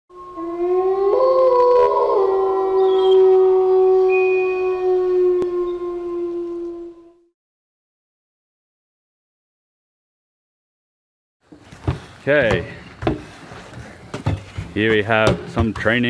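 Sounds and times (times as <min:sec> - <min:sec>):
wolves howling: 0:00.1 - 0:07.3.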